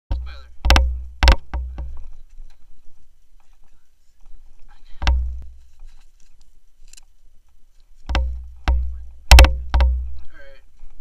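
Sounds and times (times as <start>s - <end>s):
sharp thump: 0.1s - 2.0s, 5.0s - 5.5s, 8.1s - 10.1s.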